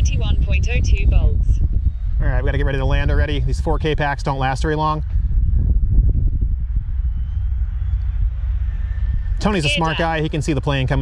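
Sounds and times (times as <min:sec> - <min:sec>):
wind buffeting microphone: 0:00.0 - 0:11.0
distant model jet whine: 0:01.8 - 0:11.0.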